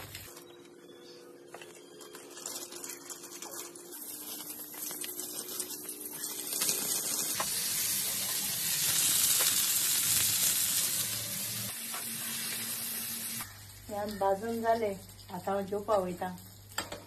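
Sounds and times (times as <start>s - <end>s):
sausages sizzling in a frying pan: 2.2s - 17.0s.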